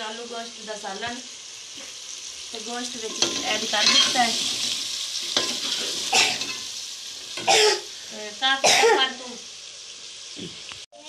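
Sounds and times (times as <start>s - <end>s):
curry frying and hissing: 0.0s - 11.0s
ladle stirring in pot: 3.0s - 7.5s
person coughing: 6.1s - 6.4s, 7.4s - 7.9s, 8.6s - 9.0s.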